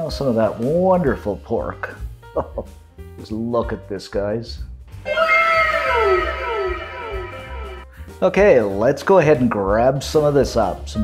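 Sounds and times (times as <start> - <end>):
background music with bass line: 4.6 - 11.0
tones sliding down in pitch: 5.1 - 7.9.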